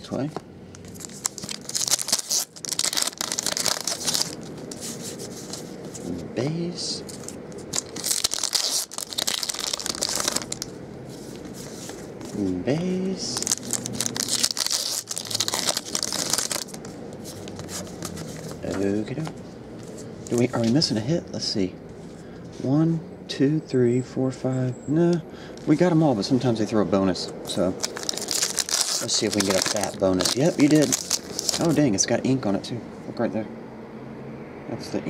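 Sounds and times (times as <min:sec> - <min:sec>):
foil pack crinkling and tearing: 0:00.8 - 0:05.6, 0:07.7 - 0:10.7, 0:13.3 - 0:16.8, 0:27.6 - 0:31.9
cards rustling and sliding: 0:00.8 - 0:06.3, 0:07.0 - 0:12.6, 0:13.3 - 0:20.9, 0:27.6 - 0:31.8.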